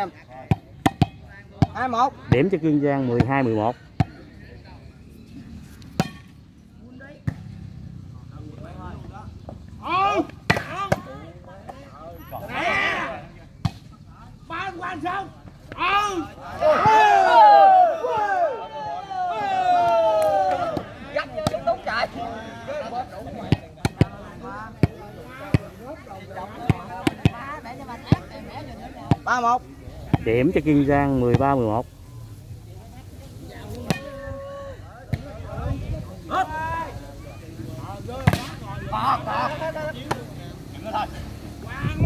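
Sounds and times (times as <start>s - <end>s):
ball being struck: 0.5s - 2.4s, 5.9s - 6.3s, 10.4s - 11.1s, 23.5s - 24.2s, 26.6s - 27.4s, 38.2s - 38.6s
spectators shouting: 9.8s - 11.2s, 12.3s - 13.4s, 14.5s - 23.3s, 33.7s - 35.0s
crowd murmur: 15.3s - 42.0s.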